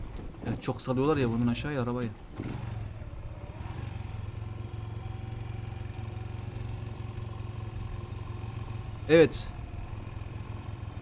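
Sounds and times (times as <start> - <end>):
motorcycle engine running: 2.2 - 11.0.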